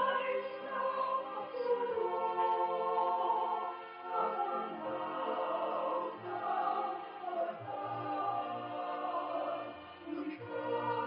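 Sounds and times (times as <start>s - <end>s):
choir-like voices: 0.0s - 11.0s
musical accompaniment: 0.0s - 11.0s.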